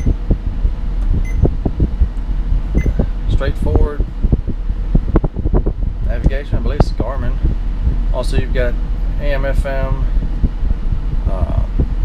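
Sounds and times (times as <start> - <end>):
air conditioning blowing: 0.0 - 12.0
airflow thumping on microphone: 0.0 - 12.0
steady low hum: 0.0 - 12.0.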